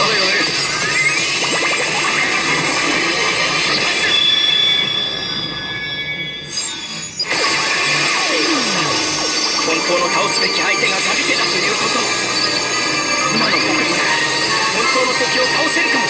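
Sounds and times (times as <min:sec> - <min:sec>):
voice line: 0:00.0 - 0:04.4, 0:08.0 - 0:16.0
pachinko machine sound effects: 0:00.0 - 0:04.7, 0:07.3 - 0:16.0
pachinko parlour din: 0:00.0 - 0:05.3, 0:07.3 - 0:16.0.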